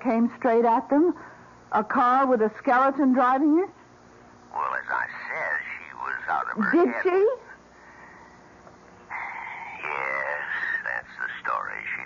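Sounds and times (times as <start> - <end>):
man talking over telephone: 4.5 - 7.4, 9.8 - 12.0.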